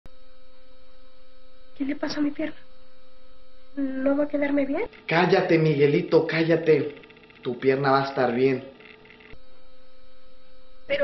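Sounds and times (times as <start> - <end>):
steady film soundtrack hum: 0.1 - 11.0
person speaking: 3.8 - 8.8.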